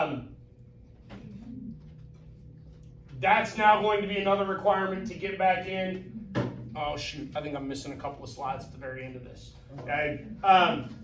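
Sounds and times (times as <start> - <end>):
soft rising and falling hum: 0.0 - 11.0
steady low hum: 0.0 - 11.0.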